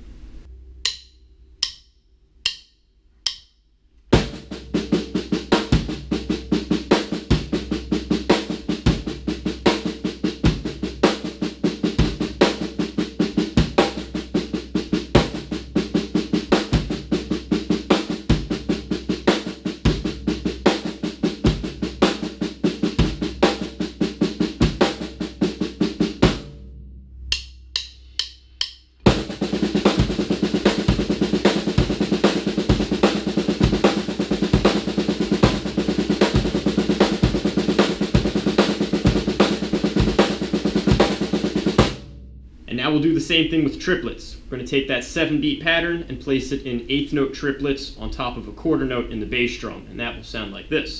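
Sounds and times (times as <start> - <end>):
snare drum strokes: 27.3 - 43.0
bass drum pulse: 29.1 - 42.7.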